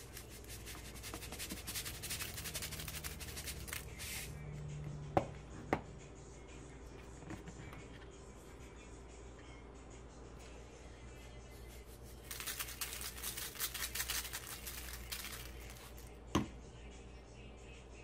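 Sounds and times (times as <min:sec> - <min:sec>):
aluminium foil crinkling: 0:00.0 - 0:04.0, 0:12.2 - 0:16.1.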